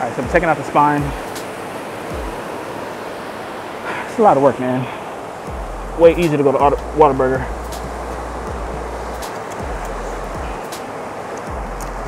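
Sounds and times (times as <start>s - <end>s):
wind and surf: 0.0s - 12.0s.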